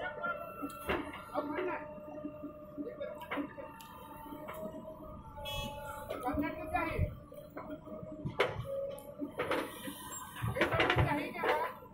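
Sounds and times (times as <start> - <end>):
diesel engine drone: 0.0 - 11.9.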